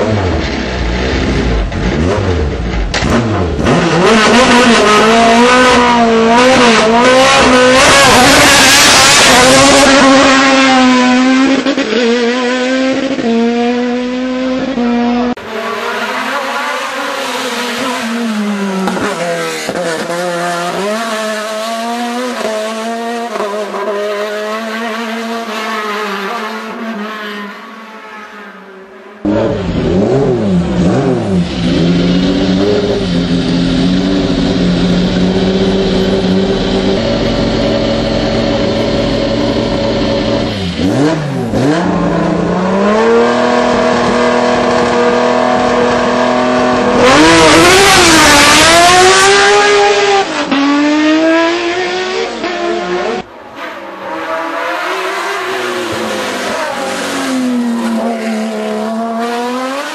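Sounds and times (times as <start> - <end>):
race car engine revving: 0.0 - 27.5, 29.2 - 59.9.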